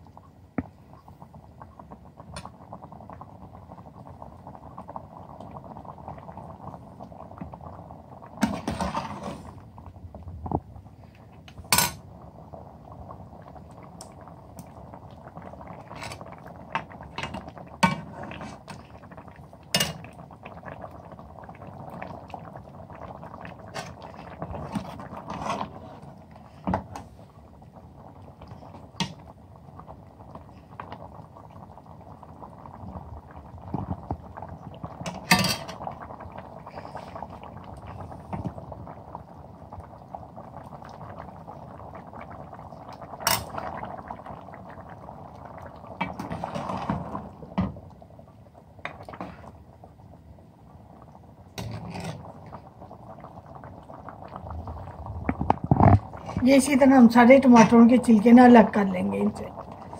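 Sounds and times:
stew bubbling in a pot: 0.0 - 59.9.

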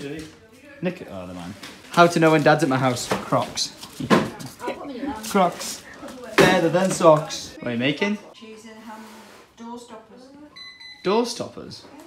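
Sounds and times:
high electronic beep: 10.6 - 11.3.

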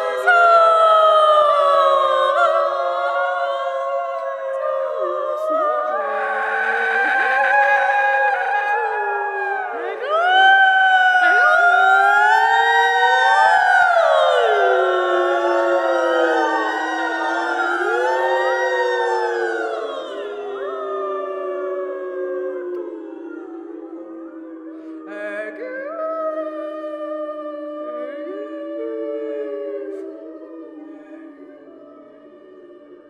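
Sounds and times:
women singing long notes: 0.0 - 33.0.

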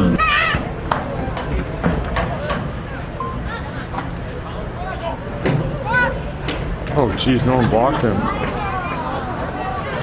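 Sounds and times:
players shouting and calling: 0.0 - 3.2, 3.9 - 10.0
background murmur: 0.0 - 10.0.

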